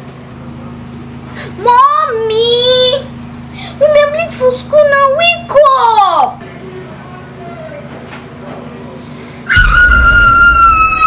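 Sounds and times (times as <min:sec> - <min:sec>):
child screaming: 0:09.5 - 0:11.0.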